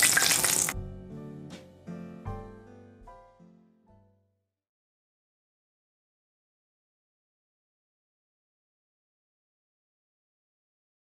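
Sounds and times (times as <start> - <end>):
oil sizzling in a skillet: 0.0 - 0.8
soft piano music: 0.0 - 4.4.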